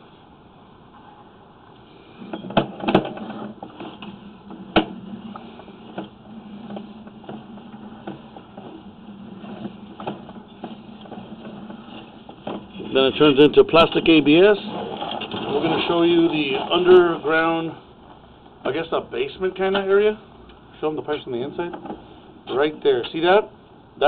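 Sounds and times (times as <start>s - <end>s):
steady hum: 0.0s - 24.0s.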